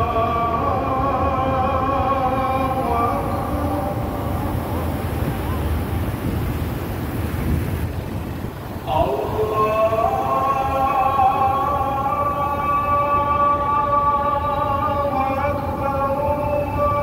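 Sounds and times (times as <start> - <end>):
call to prayer over loudspeakers: 0.0 - 5.0, 8.8 - 17.0
low rumble of background noise: 0.0 - 17.0.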